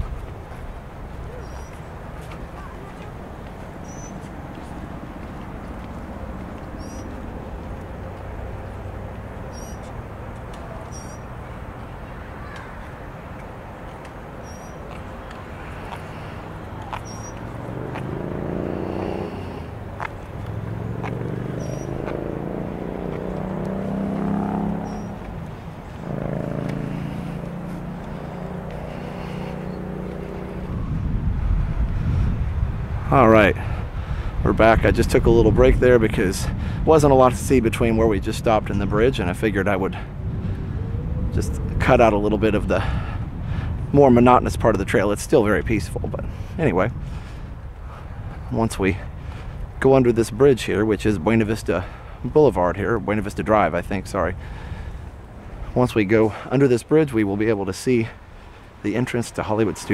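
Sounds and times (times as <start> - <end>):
traffic rumble: 0.0 - 59.9
vehicles accelerating past: 0.0 - 59.9.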